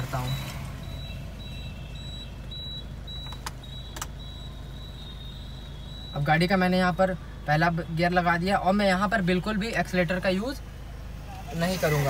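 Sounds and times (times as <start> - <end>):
car engine idling: 0.0 - 12.0
sharp clicks: 3.2 - 4.2.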